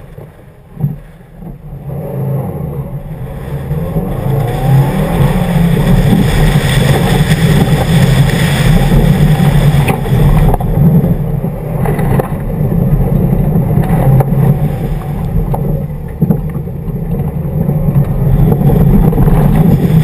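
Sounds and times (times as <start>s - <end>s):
car engine running hard: 0.0s - 20.0s
tyres on loose gravel: 2.9s - 20.0s.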